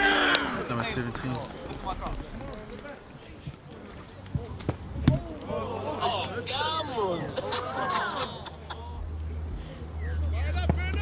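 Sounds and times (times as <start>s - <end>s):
players shouting: 0.0s - 8.2s
rugby ball kicked: 4.3s - 5.9s.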